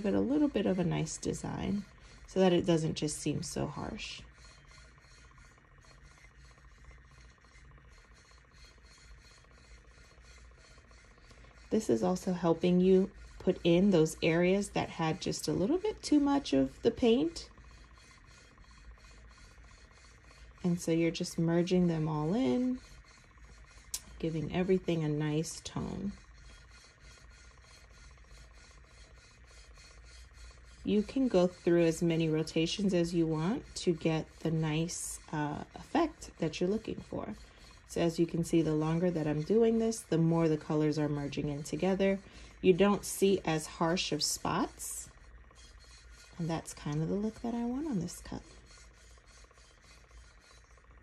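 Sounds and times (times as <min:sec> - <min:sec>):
faint rubbing of beads in paint: 0:00.0 - 0:51.0
low steady hum: 0:00.0 - 0:51.0.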